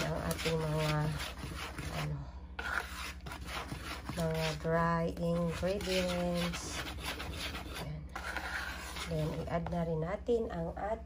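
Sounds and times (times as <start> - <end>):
whisk scratching through flour: 0.0 - 9.9.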